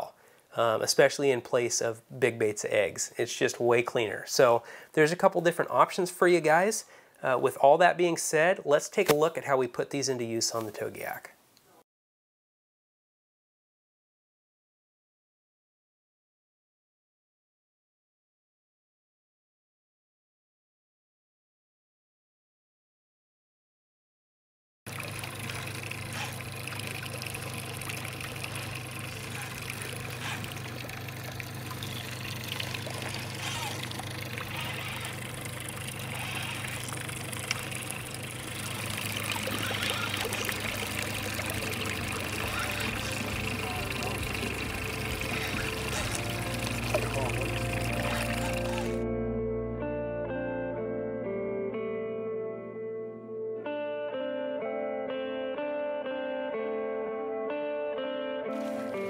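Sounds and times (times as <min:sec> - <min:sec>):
wind: 0:24.9 - 0:48.9
water noise: 0:24.9 - 0:49.0, 0:58.6 - 0:59.0
steady low hum: 0:25.0 - 0:49.4
plucked guitar music: 0:39.6 - 0:59.0.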